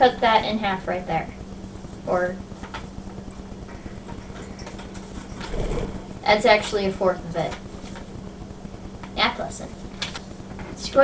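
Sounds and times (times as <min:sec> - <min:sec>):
paper rustling: 0:10.0 - 0:10.2.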